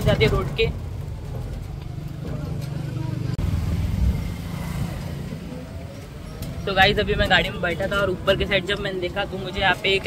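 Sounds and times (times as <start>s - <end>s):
tyre and road rumble: 0.0s - 10.0s
wind buffeting microphone: 3.4s - 10.0s.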